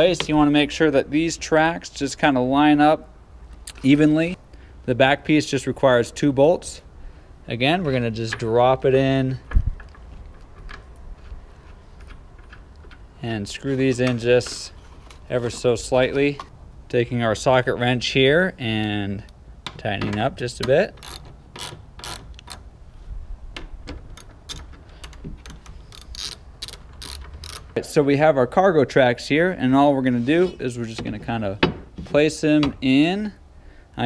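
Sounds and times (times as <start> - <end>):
metal bolt and washer clicks: 19.2 - 22.7, 23.5 - 27.8.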